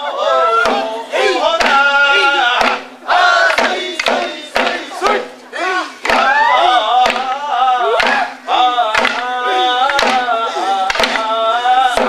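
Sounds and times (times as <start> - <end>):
men chanting and calling out: 0.0 - 12.0.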